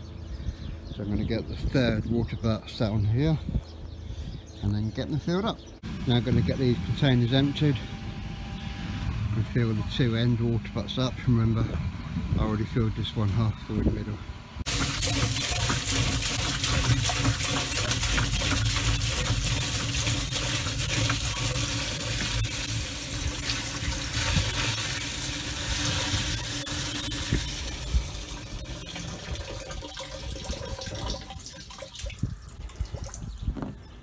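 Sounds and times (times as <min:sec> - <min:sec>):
water pouring into plastic butt: 0:14.7 - 0:33.2.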